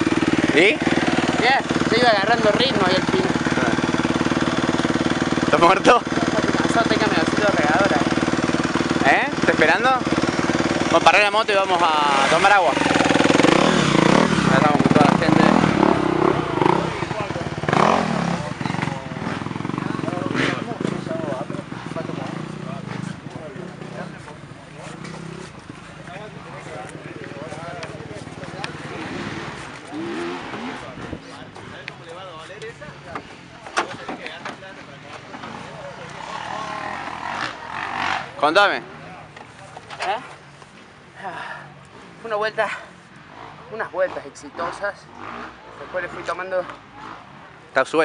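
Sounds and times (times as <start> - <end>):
dirt bike engine at low revs: 0.0 - 31.6, 35.4 - 39.0.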